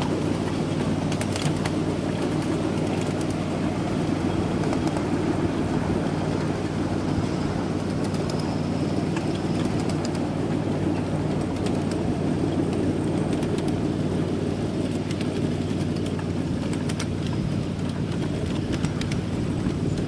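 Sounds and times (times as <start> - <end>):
miniature train running on track: 0.0 - 20.0
faint clicks: 8.0 - 10.2.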